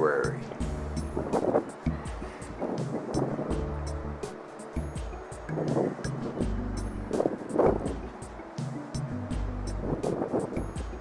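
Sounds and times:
background music with bass line: 0.0s - 11.0s
light percussion: 0.0s - 11.0s.

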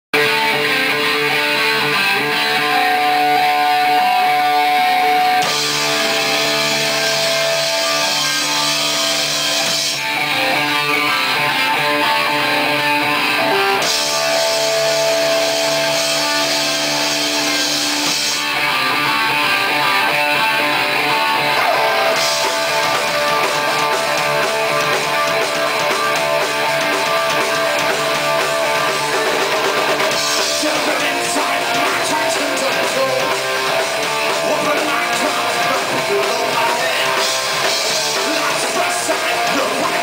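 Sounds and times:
drum kit: 0.1s - 40.0s
electric guitars: 0.2s - 40.0s.

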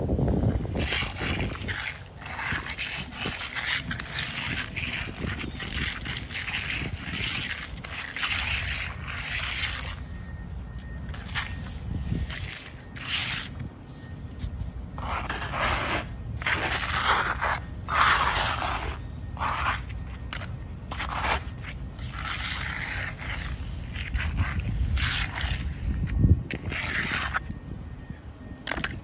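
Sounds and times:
wind rumble on microphone: 0.0s - 29.0s
trowel scraping wet concrete: 0.2s - 13.7s, 14.3s - 27.6s.

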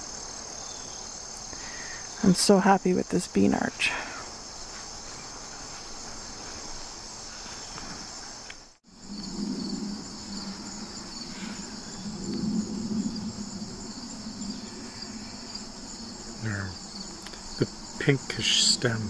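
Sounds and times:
crickets chirping: 0.0s - 19.0s
low uneven rumble: 8.9s - 19.0s.

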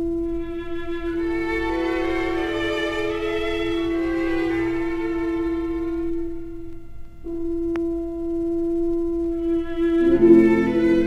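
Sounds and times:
orchestral strings holding a note: 9.4s - 11.0s.

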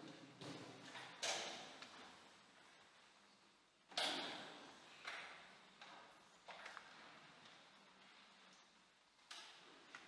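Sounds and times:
knocks echoing in a large church: 0.0s - 10.0s.

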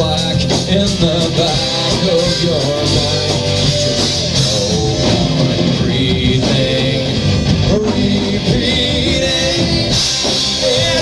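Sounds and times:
live rock band playing: 0.0s - 11.0s.

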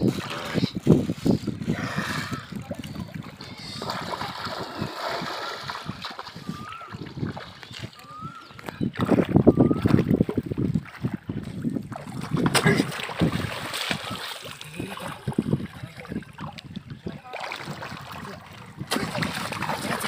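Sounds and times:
legs wading and splashing in water: 0.0s - 20.0s
spear jabbing into water: 11.9s - 15.3s, 17.4s - 20.0s.

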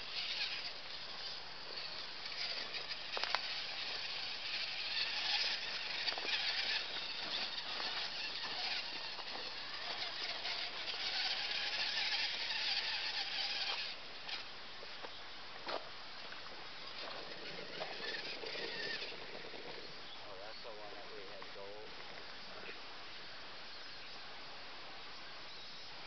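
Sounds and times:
toy car motor whining: 0.0s - 14.5s, 16.8s - 20.0s
wheels clicking and knocking: 0.0s - 14.5s, 16.8s - 19.9s.

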